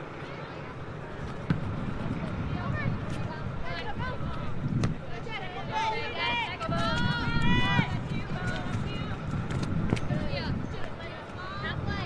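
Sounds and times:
low outdoor rumble: 0.0 - 12.0
girls shouting: 5.6 - 8.1.

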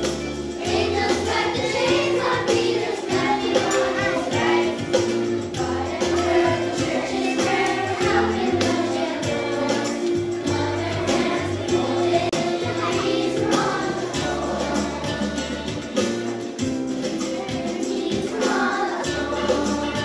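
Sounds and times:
children's choir singing: 0.0 - 20.0
instrumental accompaniment with beat: 0.0 - 20.0.

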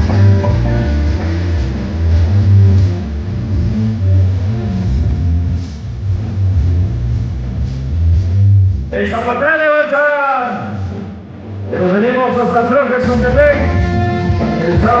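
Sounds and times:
loud dance music: 0.0 - 6.1, 6.7 - 15.0.

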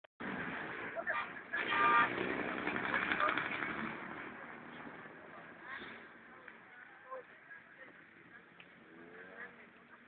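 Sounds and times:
outdoor background noise: 0.2 - 10.0.

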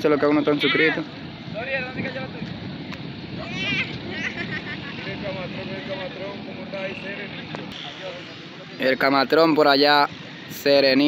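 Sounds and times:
distant voices: 0.0 - 11.0
outdoor background noise: 0.0 - 11.0.

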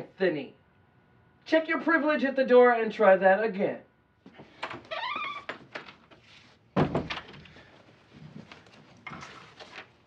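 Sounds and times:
door squeaking open: 4.6 - 5.7
door shutting with a thump: 6.8 - 7.4.

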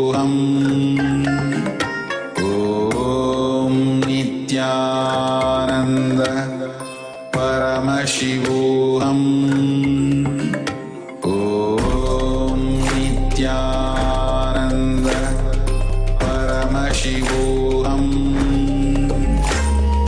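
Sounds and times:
mantras chanted in long tones: 0.0 - 1.8, 2.4 - 20.0.

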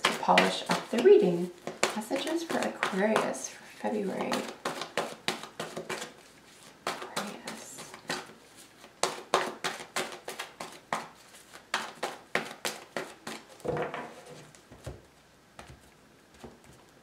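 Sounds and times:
cards being shuffled: 4.1 - 13.6.

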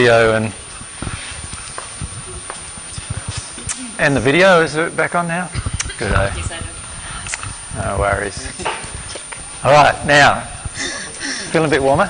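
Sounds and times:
steady room hiss: 0.0 - 12.0.

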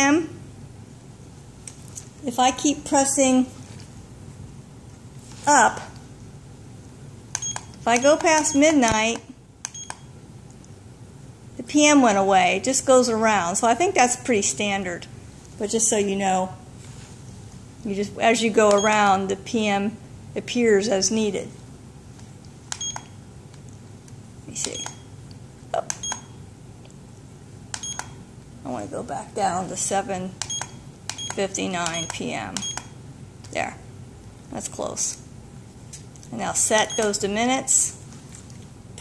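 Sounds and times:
high electronic key beep: 7.4 - 7.8, 9.7 - 10.1, 22.8 - 23.1, 24.6 - 25.0, 26.0 - 26.3, 27.8 - 28.2, 30.4 - 32.9, 36.8 - 37.2
alarm clock button clicks: 30.4 - 32.9.

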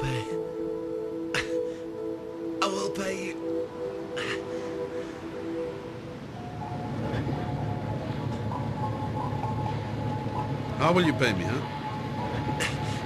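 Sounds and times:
sustained music chords: 0.0 - 13.0.

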